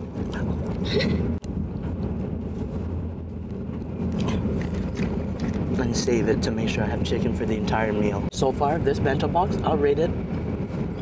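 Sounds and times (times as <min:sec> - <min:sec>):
train cabin rumble: 0:00.0 - 0:11.0.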